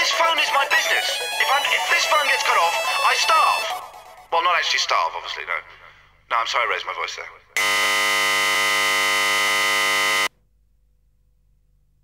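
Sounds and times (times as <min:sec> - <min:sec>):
harsh electronic buzz: 0:07.6 - 0:10.3.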